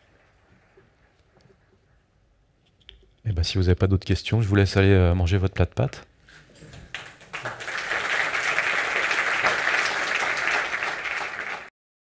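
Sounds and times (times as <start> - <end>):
audience applauding: 6.9 - 11.7.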